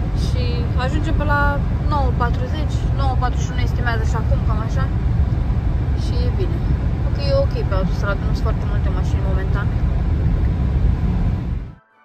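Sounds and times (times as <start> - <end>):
car road and engine rumble: 0.0 - 11.8.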